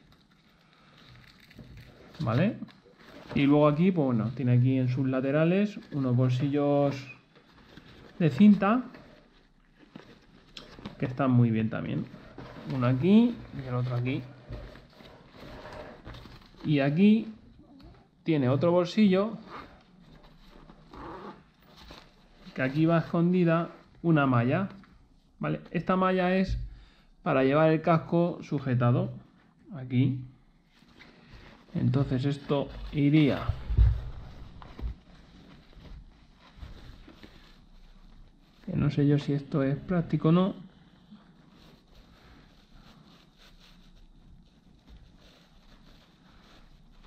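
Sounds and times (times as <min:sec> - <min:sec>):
nylon fabric rustling: 0:00.0 - 0:25.2, 0:30.6 - 0:47.0.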